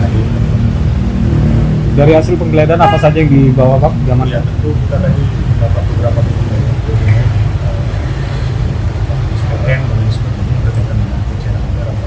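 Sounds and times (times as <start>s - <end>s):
loud low rumble: 0.0s - 8.0s.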